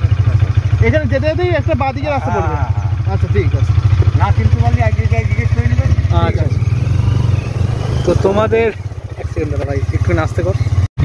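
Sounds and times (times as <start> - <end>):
motorcycle engine idling: 0.0 - 10.9
people talking: 0.8 - 6.7, 8.0 - 10.6.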